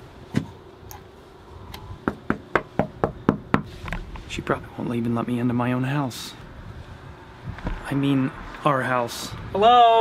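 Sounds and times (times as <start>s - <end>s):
knocking on a door: 2.0s - 3.7s.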